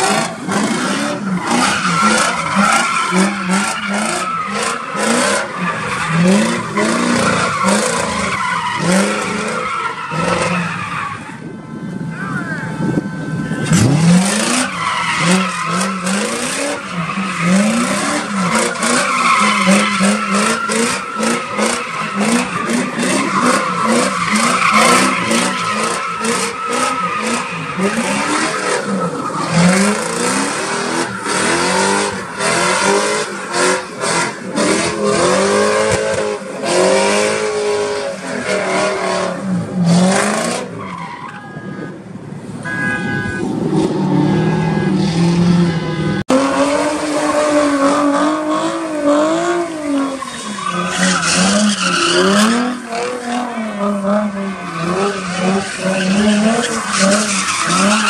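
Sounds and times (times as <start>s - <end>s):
car engine revving: 0.0s - 11.1s, 12.8s - 40.9s, 43.4s - 58.0s
tyres squealing on pavement: 0.0s - 43.5s, 44.1s - 58.0s.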